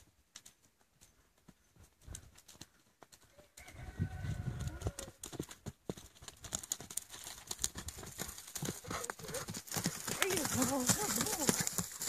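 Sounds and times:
horse hoofbeats on dirt: 0:00.0 - 0:12.0.

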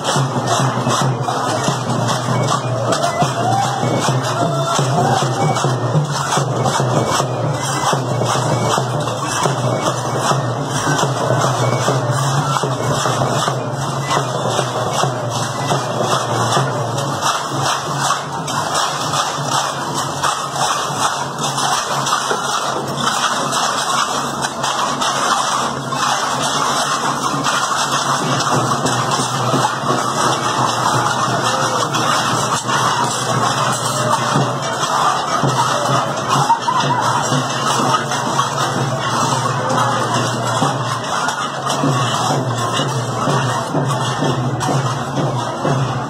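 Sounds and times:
street procession music: 0:00.0 - 0:46.0
walking crowd noise: 0:00.0 - 0:46.0.

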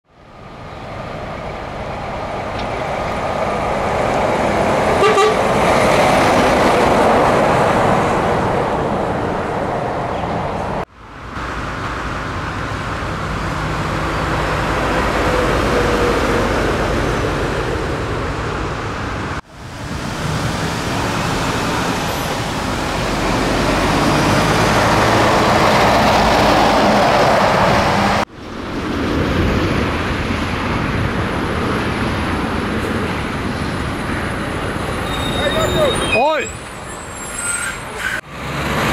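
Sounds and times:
heavy trucks driving past: 0:00.2 - 0:38.9
short horn toot: 0:05.0 - 0:05.4.

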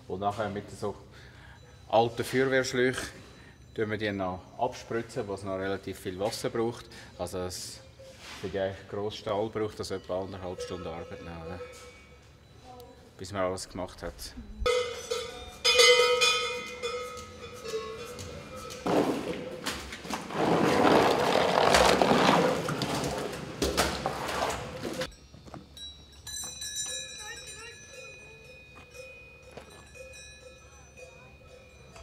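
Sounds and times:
cowbells clinking: 0:00.0 - 0:08.2, 0:08.9 - 0:20.1, 0:25.0 - 0:32.0
shovel scraping concrete floor: 0:18.8 - 0:25.1.

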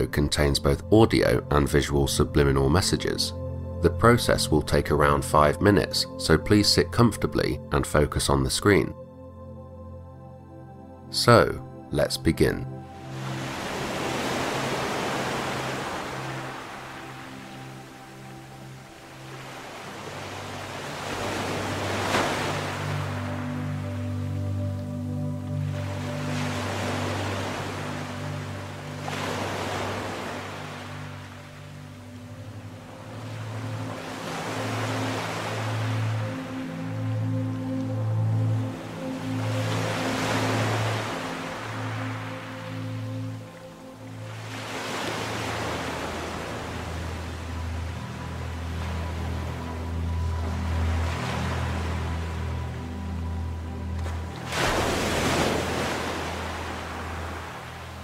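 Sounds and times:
soft ambient music chords: 0:00.0 - 0:58.0
ocean waves washing in: 0:12.9 - 0:37.3, 0:38.6 - 0:58.0
ocean surf washing in: 0:13.0 - 0:24.0, 0:54.2 - 0:58.0.

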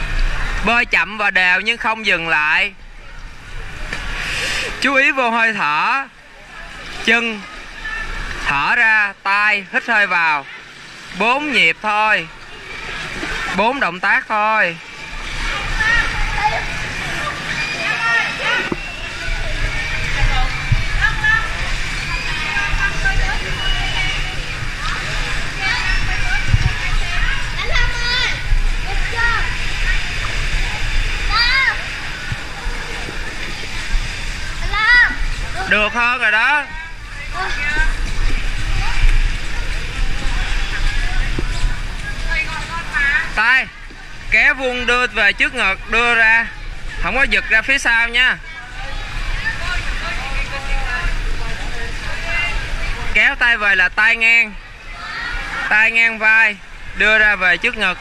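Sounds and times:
swimmers splashing in pool: 0:00.0 - 0:58.0.

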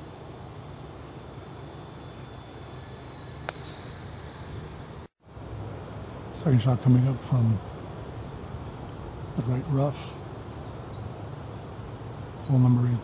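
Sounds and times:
outdoor background noise: 0:00.0 - 0:13.0
golf club striking ball: 0:03.4 - 0:04.0.

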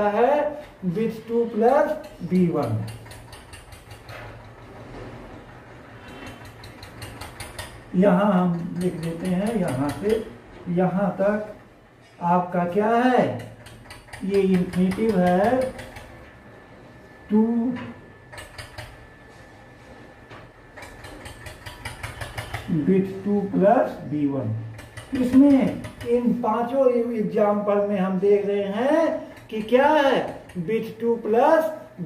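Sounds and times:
low steady hum: 0:00.0 - 0:32.0
marker writing on whiteboard: 0:00.5 - 0:10.4, 0:13.2 - 0:16.2, 0:20.8 - 0:22.8, 0:24.7 - 0:26.4.

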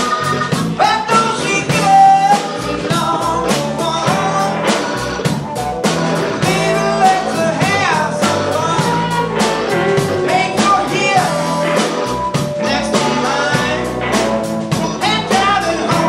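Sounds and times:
drum kit: 0:00.0 - 0:16.0
electric bass: 0:00.0 - 0:16.0
electric guitars: 0:00.0 - 0:16.0.

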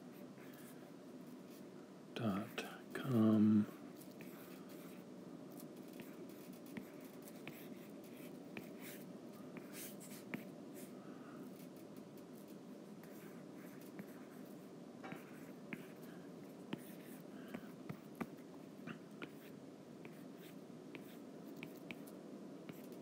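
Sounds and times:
low background hum: 0:00.0 - 0:23.0.

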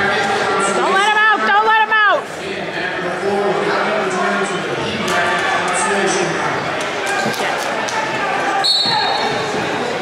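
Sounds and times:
murmur of spectators: 0:00.0 - 0:10.0
referee's whistle blast: 0:08.6 - 0:09.3.

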